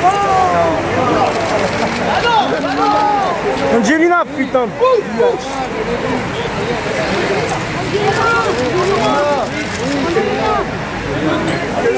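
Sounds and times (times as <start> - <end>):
people talking and calling out: 0.0 - 11.9.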